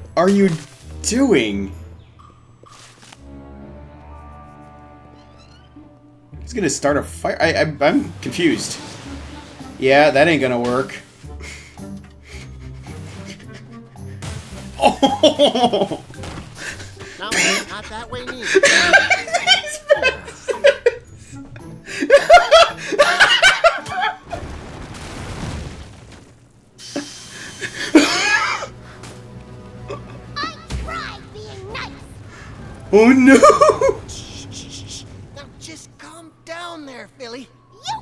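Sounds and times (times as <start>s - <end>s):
cartoon background music: 0.0s - 24.2s, 27.3s - 38.0s
cartoon music: 29.9s - 32.3s.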